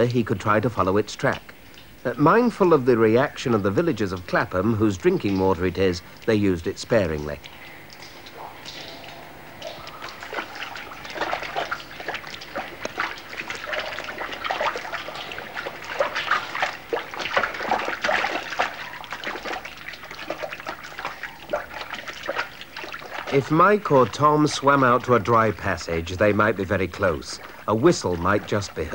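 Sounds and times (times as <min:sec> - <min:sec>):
stream water trickling: 0:00.0 - 0:28.9
container splashing in water: 0:07.0 - 0:28.9.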